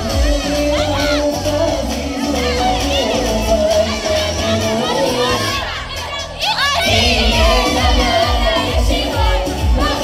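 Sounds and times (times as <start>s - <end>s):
dance music: 0.0s - 10.0s
girls shouting and cheering: 0.0s - 10.0s.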